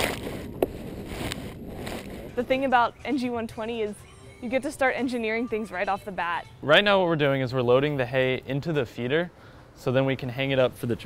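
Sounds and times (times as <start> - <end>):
dry hay rustling and scraping: 0.0 - 3.3.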